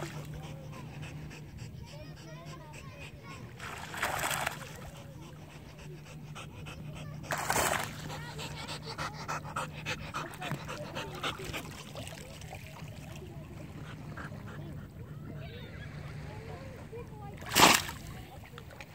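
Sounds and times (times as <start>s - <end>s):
water splashing and sloshing: 0.0s - 18.9s.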